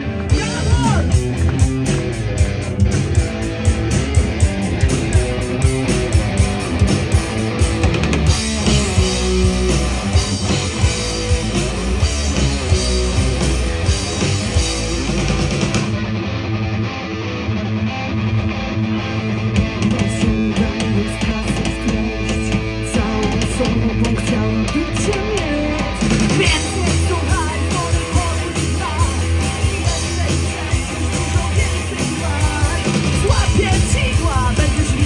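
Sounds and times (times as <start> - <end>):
bass guitar: 0.0 - 35.0
distorted electric guitar: 0.0 - 35.0
drums: 0.0 - 35.0.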